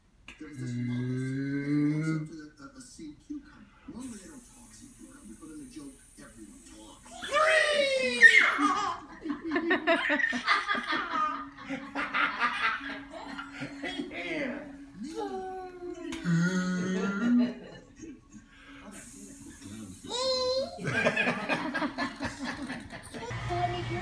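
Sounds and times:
toddler squealing: 7.1s - 8.9s
toddler giggling: 8.2s - 11.3s.

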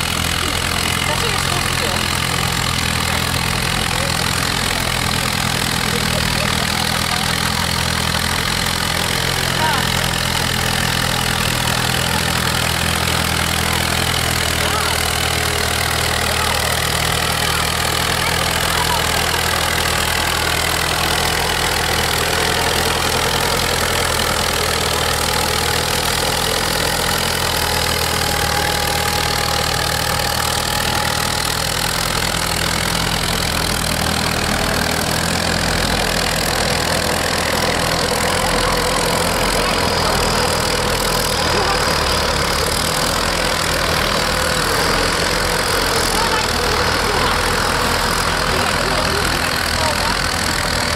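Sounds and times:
tractor engine running steadily: 0.0s - 50.9s.

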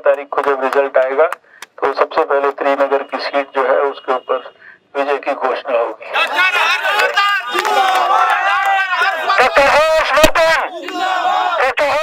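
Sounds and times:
crowd shouting: 6.1s - 11.8s
men shouting over loudspeakers: 6.1s - 12.0s.

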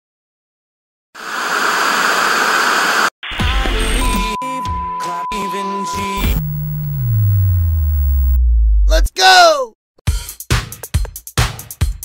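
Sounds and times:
glitchy music with heavy bass: 6.0s - 8.7s.

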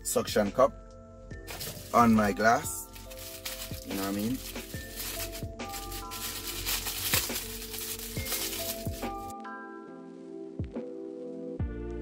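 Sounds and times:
background music with beat: 0.0s - 12.0s
plastic bag crinkling: 1.5s - 9.3s.

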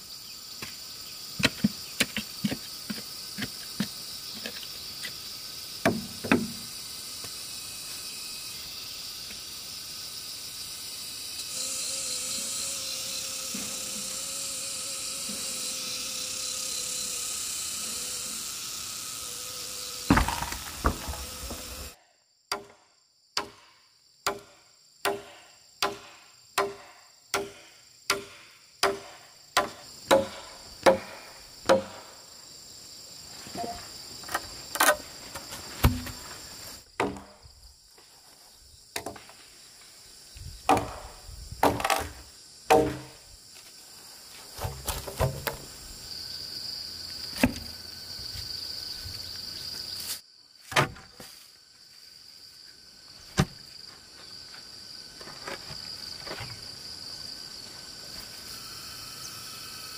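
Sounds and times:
insects buzzing: 0.0s - 59.9s
blade chopping wood: 1.4s - 3.5s, 20.1s - 21.9s, 25.1s - 32.0s, 35.8s - 36.2s, 37.0s - 37.3s, 40.7s - 43.2s, 44.6s - 45.6s, 50.7s - 51.2s.

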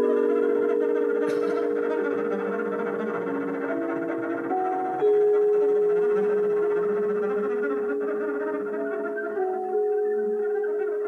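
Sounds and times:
jazz trio music: 0.0s - 11.0s
sharp sustained note: 0.0s - 11.0s.

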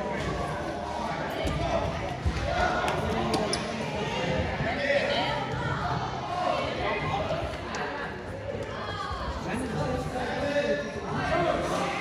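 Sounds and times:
chatter of children and adults: 0.0s - 12.0s.

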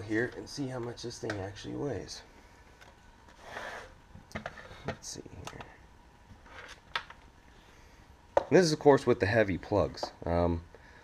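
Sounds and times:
scale sliding on wooden desk: 3.4s - 4.9s.

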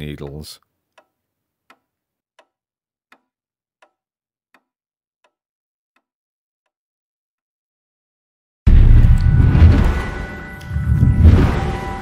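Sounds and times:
faint evenly spaced ticks: 0.0s - 5.4s.

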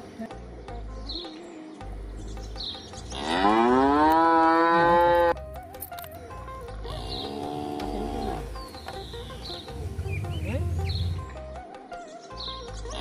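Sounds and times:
cow mooing: 3.1s - 5.4s, 6.9s - 8.6s.

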